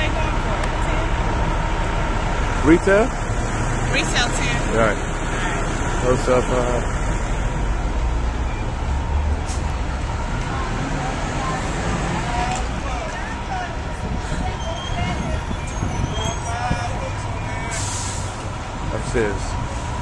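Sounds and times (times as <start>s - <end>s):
heavy vehicle engine running: 0.0s - 20.0s
street traffic: 0.0s - 20.0s.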